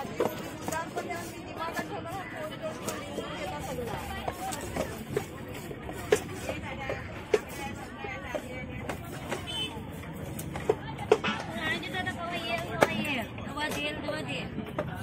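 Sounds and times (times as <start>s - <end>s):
murmur of market voices: 0.0s - 15.0s.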